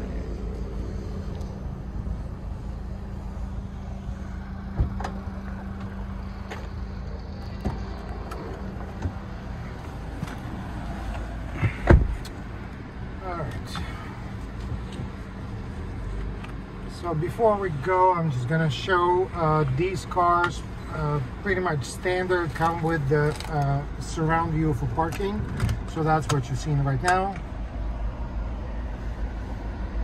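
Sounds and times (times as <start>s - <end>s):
car door shutting: 4.7s - 6.8s, 11.1s - 12.4s.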